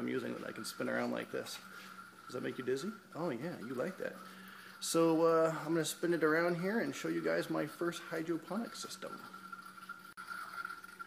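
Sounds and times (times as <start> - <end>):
faint steady hum: 0.0 - 11.0
thin high whine: 0.0 - 11.0.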